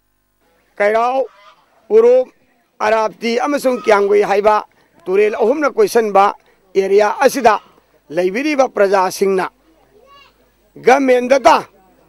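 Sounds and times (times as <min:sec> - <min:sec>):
man speaking: 0:00.8 - 0:01.3, 0:01.9 - 0:09.6, 0:10.5 - 0:12.0.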